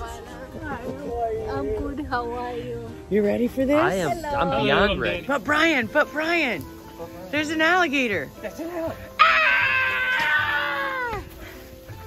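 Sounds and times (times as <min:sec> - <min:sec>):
long high-pitched scream: 0:09.2 - 0:11.2.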